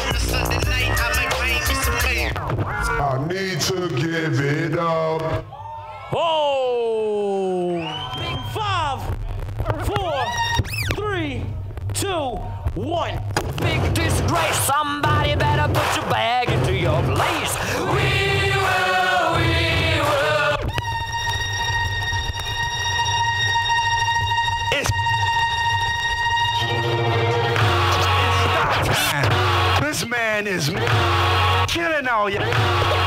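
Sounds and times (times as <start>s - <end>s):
steady bass beat: 0.0s - 2.9s, 11.0s - 26.7s, 27.4s - 29.9s
vinyl record scratching: 0.0s - 5.4s, 8.9s - 11.7s, 12.6s - 21.1s, 27.4s - 33.0s.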